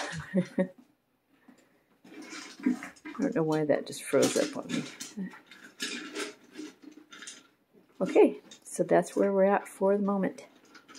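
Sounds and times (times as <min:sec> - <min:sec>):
puppies crunching kibble: 0:02.1 - 0:09.6.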